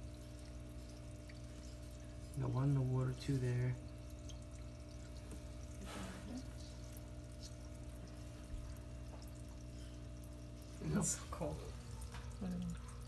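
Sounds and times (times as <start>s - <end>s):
steady low hum: 0.0s - 13.0s
water drips and stirrings: 0.0s - 13.0s.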